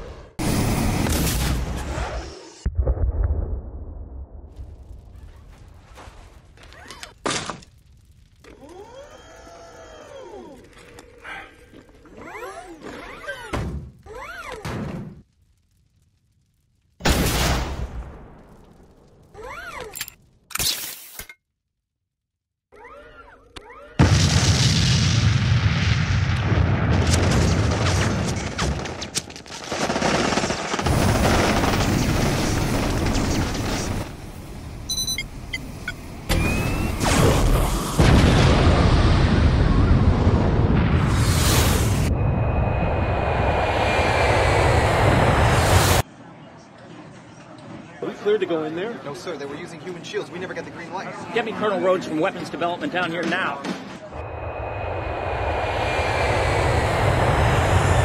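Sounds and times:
rumble: 0:00.0 - 0:11.0, 0:15.0 - 0:19.4, 0:24.0 - 0:46.0, 0:54.1 - 0:58.0
explosions: 0:00.4 - 0:06.6, 0:17.0 - 0:19.2, 0:24.0 - 0:29.1, 0:29.7 - 0:34.4, 0:36.3 - 0:46.0, 0:54.2 - 0:58.0
boom: 0:02.6 - 0:05.7, 0:24.0 - 0:28.9, 0:36.3 - 0:46.0
thrusters hovering: 0:39.1 - 0:46.0, 0:54.2 - 0:58.0.

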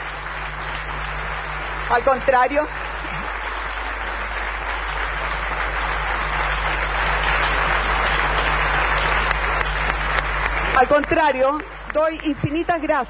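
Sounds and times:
crowd applauding: 0:00.0 - 0:13.0
low steady hum: 0:00.0 - 0:13.0.

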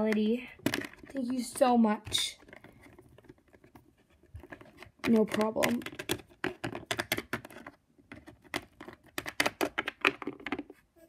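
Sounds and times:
plastic figurines clicking on floor: 0:00.0 - 0:10.8.

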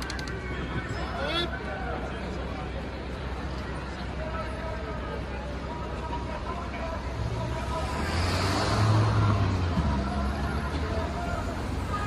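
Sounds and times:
crowd chatter: 0:00.0 - 0:12.0
car driving past: 0:07.6 - 0:10.7.

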